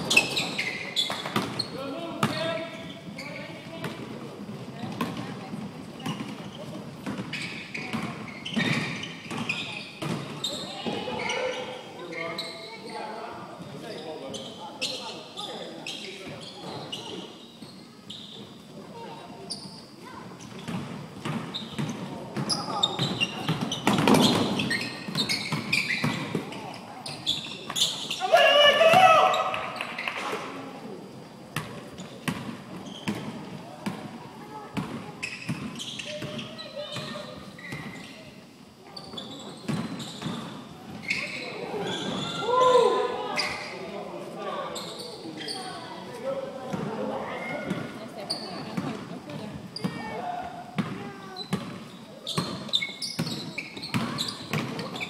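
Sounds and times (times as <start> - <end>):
players shouting: 28.2 - 29.9
basketballs bouncing on hardwood: 53.2 - 54.8.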